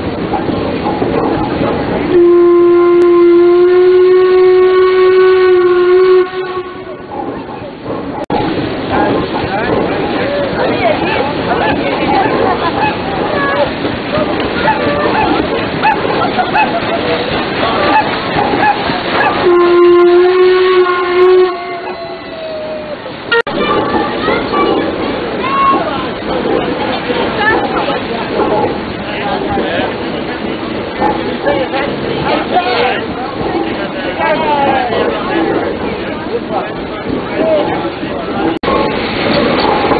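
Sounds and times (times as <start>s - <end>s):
steam whistle blast: 2.1s - 7.0s, 19.4s - 22.7s.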